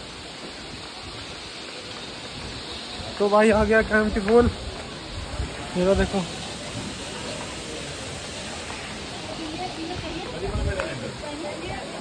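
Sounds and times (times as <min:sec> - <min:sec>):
waterfall rushing: 0:00.0 - 0:12.0.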